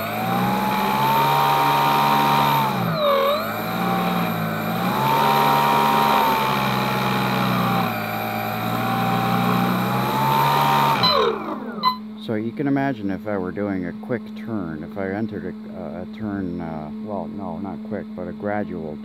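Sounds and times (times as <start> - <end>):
electric motor whining: 0.0 - 12.1.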